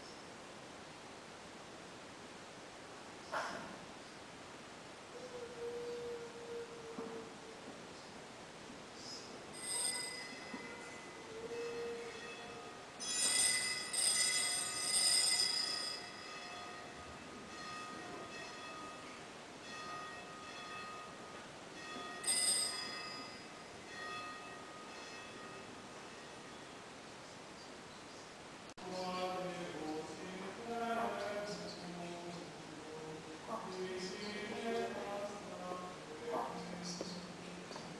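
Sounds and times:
hand bells ringing: 9.6s - 25.8s.

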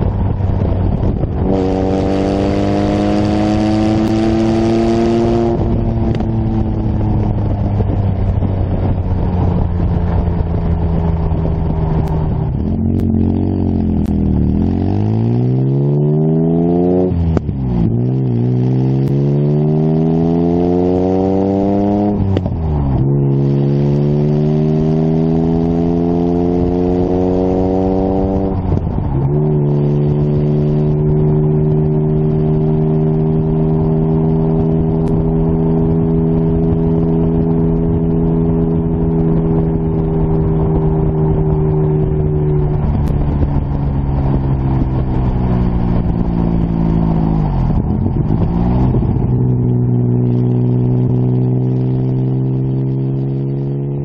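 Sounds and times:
sports car engine shifting gears: 0.0s - 54.0s.

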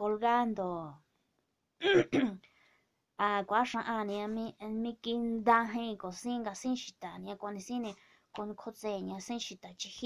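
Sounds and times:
woman clearing her throat: 1.8s - 2.4s.

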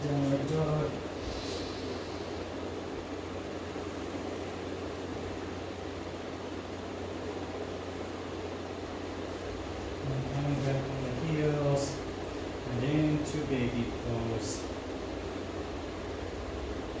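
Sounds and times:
ceiling fans running: 0.0s - 17.0s
low hum: 0.0s - 17.0s.

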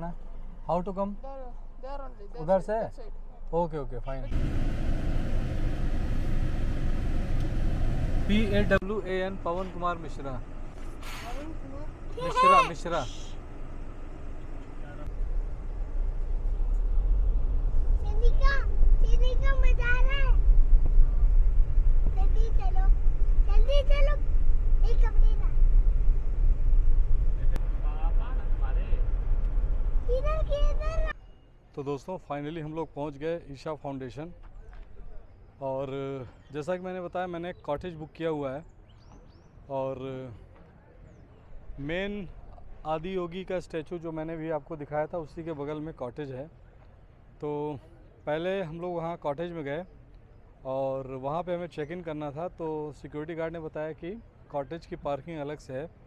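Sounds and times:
motor vehicle rumble and hiss: 3.9s - 31.2s.

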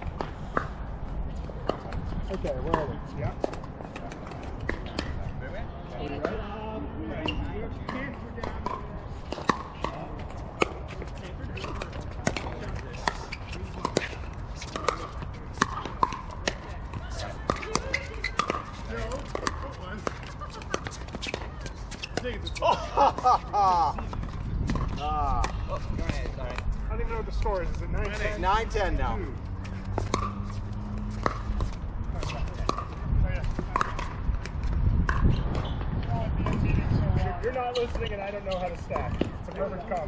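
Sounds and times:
players' voices: 0.0s - 40.0s.

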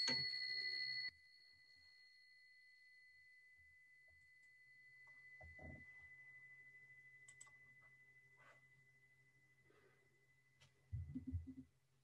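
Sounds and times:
small bell ringing: 0.0s - 9.3s.

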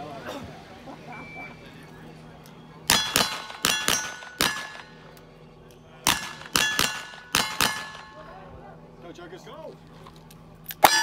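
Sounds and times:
gunshots: 2.9s - 4.9s, 6.1s - 8.2s
steel target clanging: 2.9s - 5.0s, 6.0s - 8.4s, 10.8s - 11.0s.

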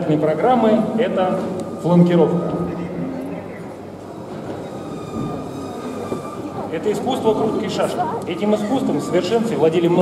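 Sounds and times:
low hum of indoor hall: 0.0s - 10.0s.

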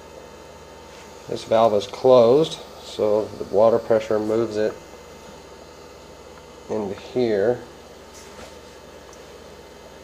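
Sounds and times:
faint electrical buzz: 0.0s - 10.0s.

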